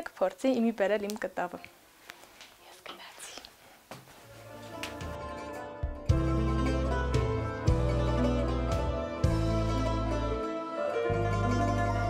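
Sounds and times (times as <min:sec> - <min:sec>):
faint whispery voice: 0:02.6 - 0:03.6.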